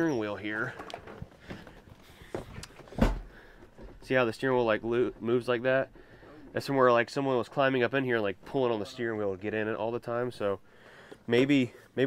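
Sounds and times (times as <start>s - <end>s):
knocks and heavy thud: 2.4s - 4.1s.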